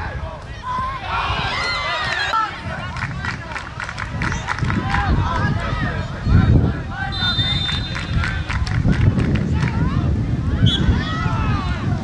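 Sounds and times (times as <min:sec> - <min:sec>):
players and spectators shouting: 0:00.0 - 0:08.5, 0:09.7 - 0:12.0.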